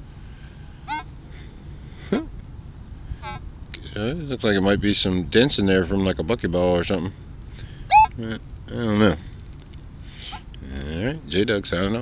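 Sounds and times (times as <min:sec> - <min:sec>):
faint steady background noise: 0:00.0 - 0:12.0
short pitched animal calls: 0:00.8 - 0:01.1, 0:03.2 - 0:03.5, 0:07.9 - 0:08.2.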